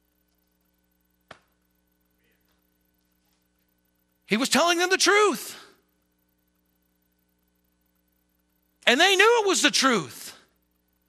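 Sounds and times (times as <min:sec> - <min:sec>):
faint electrical hum: 0:00.0 - 0:11.0
man speaking: 0:04.3 - 0:05.8, 0:08.8 - 0:10.5.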